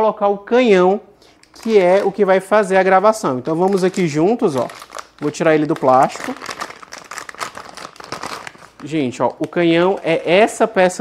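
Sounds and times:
plastic bag crinkling: 0:01.2 - 0:11.0.

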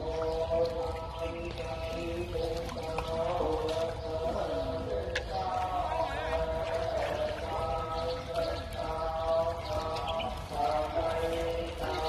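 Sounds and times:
low voice chanting: 0:00.0 - 0:12.0.

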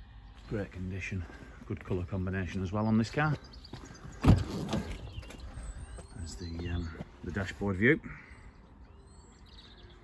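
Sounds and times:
faint bird chirp: 0:00.0 - 0:10.0.

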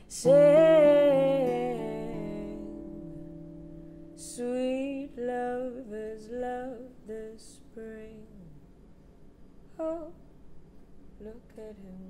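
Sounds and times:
woman singing bluesy melody: 0:00.0 - 0:08.6, 0:09.8 - 0:10.2, 0:11.2 - 0:12.0.

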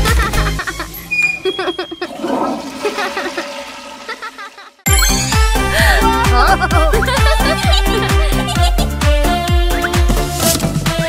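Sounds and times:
cartoon toilet flush: 0:00.5 - 0:07.8.

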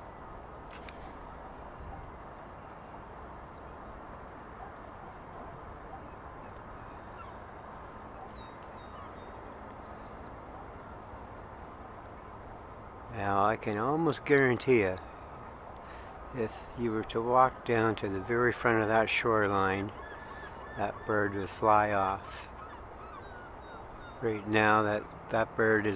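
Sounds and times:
outdoor background noise: 0:00.0 - 0:25.9.

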